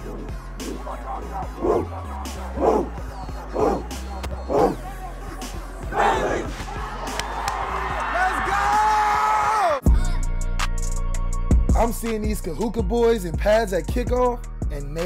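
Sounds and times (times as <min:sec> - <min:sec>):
team shouting a chant: 0:00.0 - 0:09.8
background music with bass: 0:00.0 - 0:15.0.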